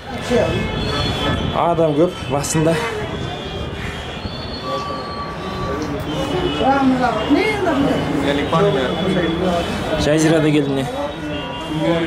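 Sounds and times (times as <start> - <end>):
wind rumbling on microphone: 0.1 - 4.5.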